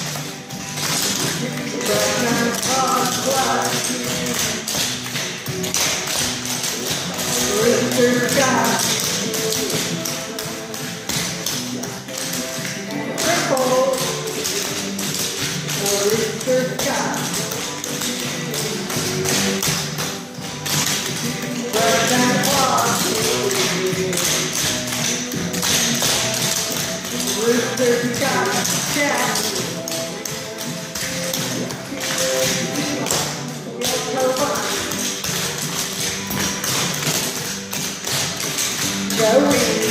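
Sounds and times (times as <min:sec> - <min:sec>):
dance shoes tapping on floor: 0:00.0 - 0:39.9.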